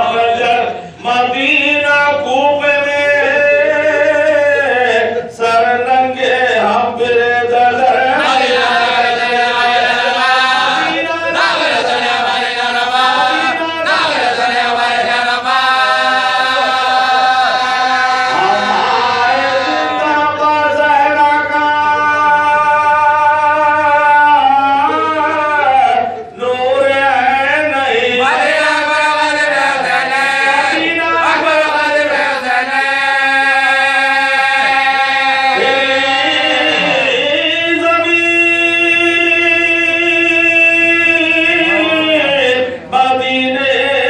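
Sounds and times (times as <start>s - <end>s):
men chanting into a microphone: 0.0s - 44.0s
men singing elegy together: 0.0s - 44.0s.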